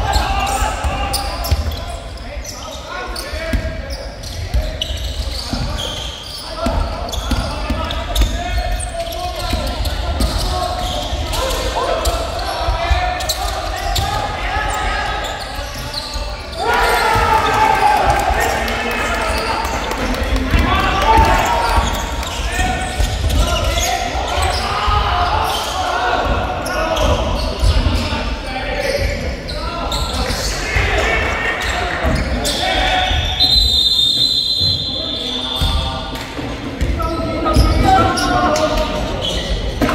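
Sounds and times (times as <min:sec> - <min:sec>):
players calling out: 0:00.0 - 0:39.9
long high whistle: 0:33.3 - 0:35.3.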